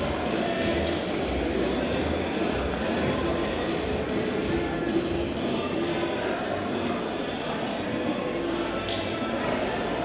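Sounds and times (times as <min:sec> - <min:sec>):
murmur of faint voices: 0:00.0 - 0:10.0.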